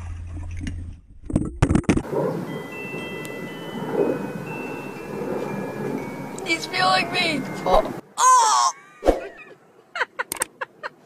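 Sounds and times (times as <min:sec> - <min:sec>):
sustained ringing tones: 0:02.1 - 0:08.0.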